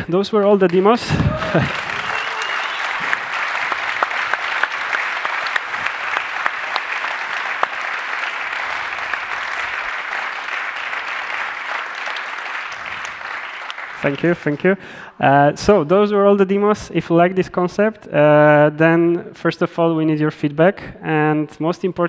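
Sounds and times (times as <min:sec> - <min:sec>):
audience applauding: 0:00.0 - 0:14.8.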